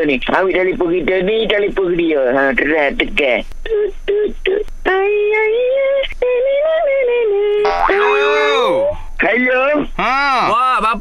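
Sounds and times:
person singing a high note: 0:03.8 - 0:08.9
comic sound effect: 0:07.6 - 0:08.8.

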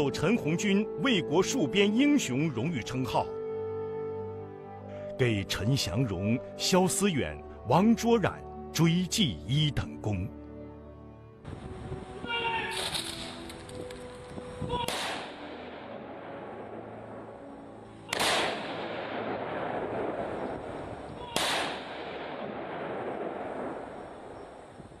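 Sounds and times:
background music: 0:00.0 - 0:24.8
loud bangs with long echo: 0:14.8 - 0:24.7.

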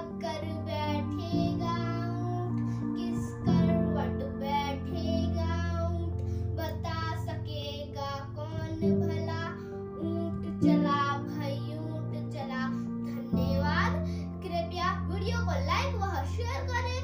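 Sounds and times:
girl singing: 0:00.0 - 0:17.0
instrumental backing music: 0:00.0 - 0:17.0.

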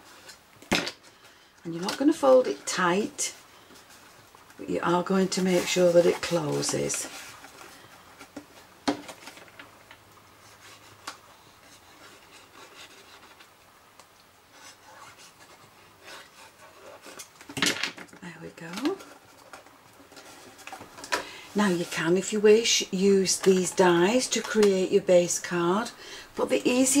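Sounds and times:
hands rubbing card stock: 0:04.9 - 0:07.4.

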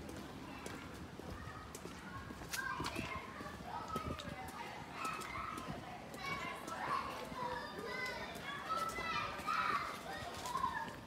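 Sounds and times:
children calling out and chattering: 0:00.0 - 0:11.0.

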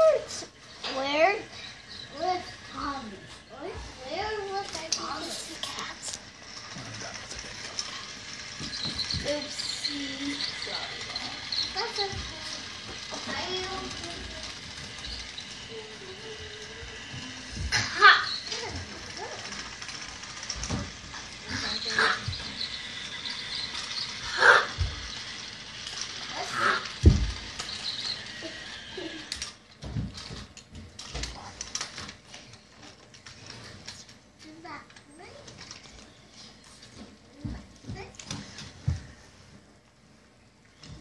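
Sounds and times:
high whir: 0:00.0 - 0:39.2.

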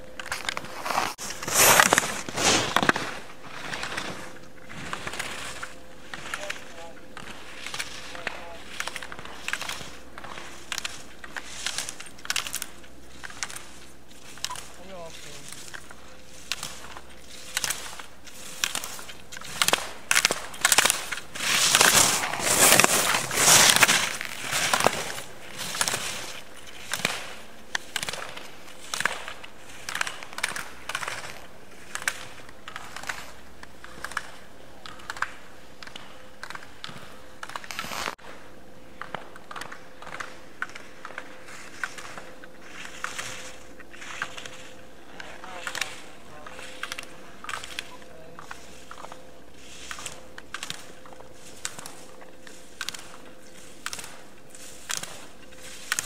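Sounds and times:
skis scraping on firm snow: 0:00.2 - 0:38.4, 0:39.0 - 0:56.0.

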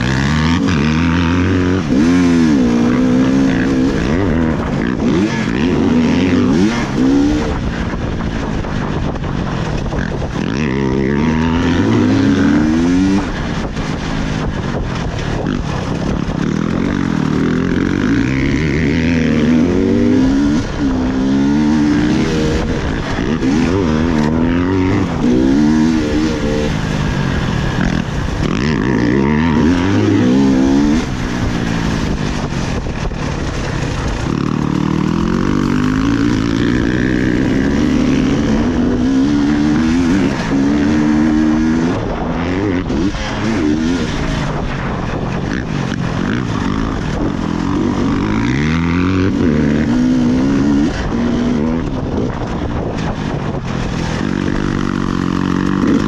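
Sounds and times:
motorcycle engine revving: 0:00.0 - 0:56.0.

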